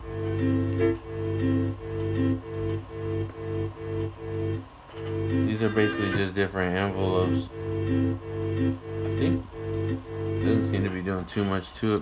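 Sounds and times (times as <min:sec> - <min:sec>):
sampler looping sampled notes: 0:07.1 - 0:10.8.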